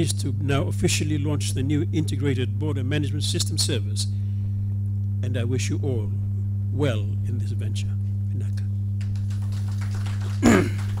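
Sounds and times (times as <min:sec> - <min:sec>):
low electrical hum: 0:00.0 - 0:11.0
short loud laugh: 0:10.3 - 0:11.0.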